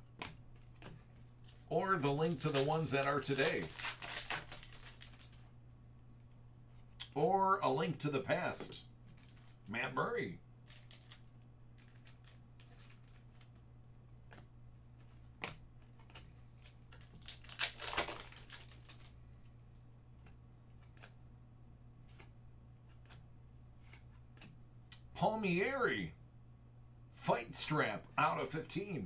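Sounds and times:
faint low hum: 0.0s - 29.0s
foil wrapper crinkling: 1.4s - 5.4s, 10.6s - 13.6s, 16.6s - 19.2s.

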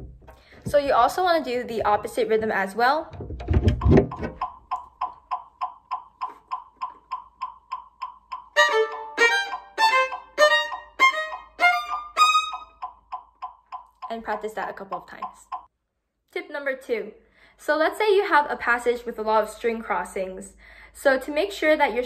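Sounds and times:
metronome clicking: 4.1s - 14.2s
violin playing fast passage: 8.6s - 12.7s.

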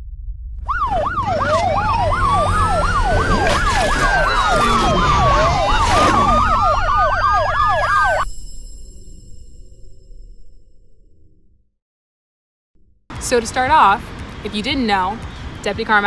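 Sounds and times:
low rumble: 0.0s - 11.7s
siren yelp and wail: 0.6s - 8.3s.

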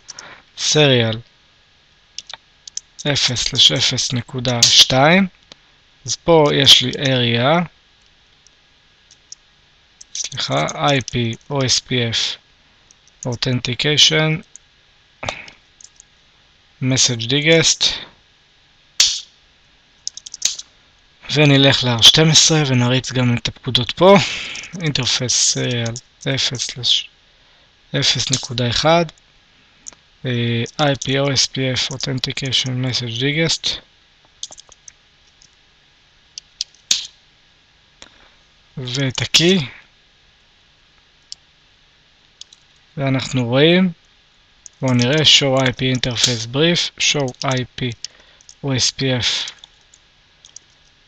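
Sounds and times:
faint steady hiss: 0.0s - 51.0s
computer keyboard keystroke: 20.1s - 20.6s, 34.4s - 35.5s, 47.2s - 47.7s.

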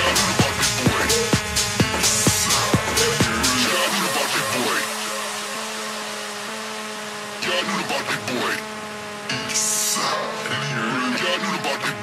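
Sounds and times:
synthesizer pad chords: 0.0s - 12.0s.

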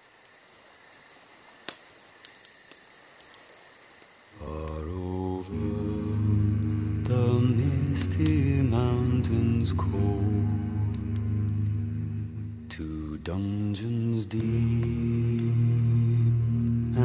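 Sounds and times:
deep drone: 4.4s - 17.0s
men's deep hummed chant: 4.4s - 17.0s.

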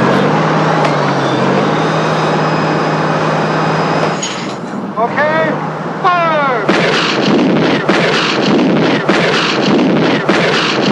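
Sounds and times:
shell explosions: 6.6s - 10.9s
rushing noise: 6.7s - 10.9s.

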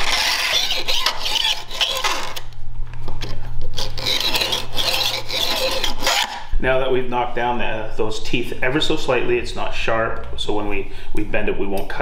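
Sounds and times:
file scraping saw blade: 0.0s - 2.4s, 3.8s - 6.5s.

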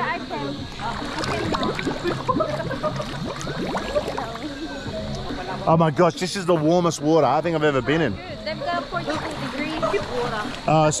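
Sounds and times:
pool water splashing: 0.0s - 11.0s.

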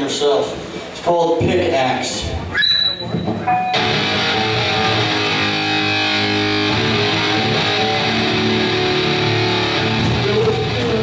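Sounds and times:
distorted electric guitar: 3.4s - 11.0s.

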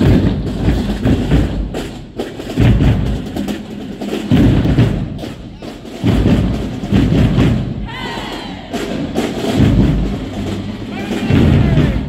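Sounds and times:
heavy bass drum hits: 0.0s - 1.8s
marching drumline playing: 0.0s - 12.0s.

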